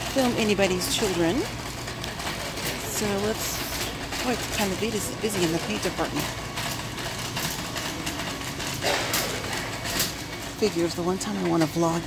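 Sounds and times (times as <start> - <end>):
shopping cart rattling: 0.0 - 12.0.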